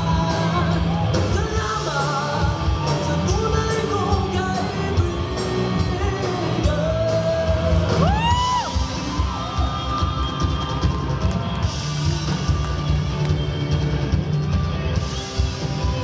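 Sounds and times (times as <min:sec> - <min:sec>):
person singing: 0:00.0 - 0:08.8
drum kit: 0:00.0 - 0:16.0.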